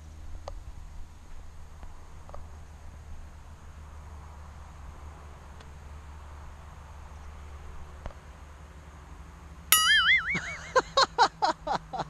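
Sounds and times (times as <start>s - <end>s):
comic warbling tone: 9.8s - 10.6s.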